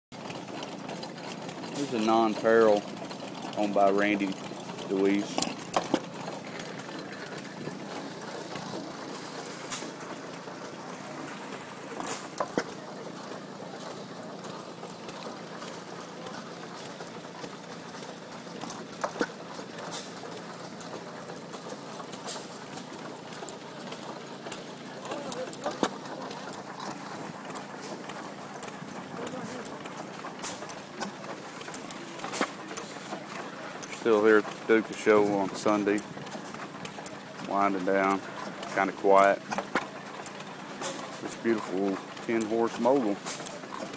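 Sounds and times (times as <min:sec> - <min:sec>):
engine firing sharp pops: 0:04.3 - 0:10.8, 0:11.4 - 0:43.9.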